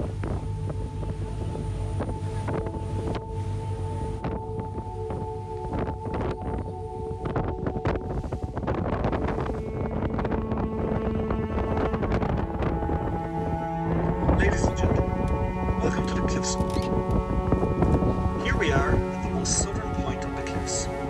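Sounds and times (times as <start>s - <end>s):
boat engine drone: 0.0s - 21.0s
wind buffeting microphone: 0.0s - 21.0s.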